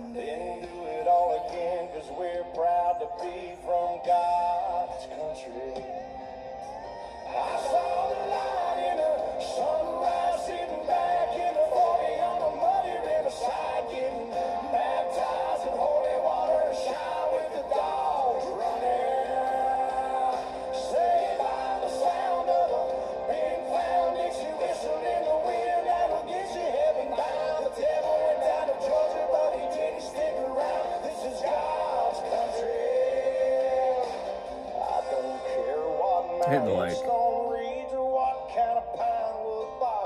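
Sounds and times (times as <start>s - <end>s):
man singing: 0.0s - 6.0s, 7.4s - 34.1s, 34.8s - 40.0s
country band music: 32.1s - 37.2s
acoustic guitars: 36.4s - 37.2s.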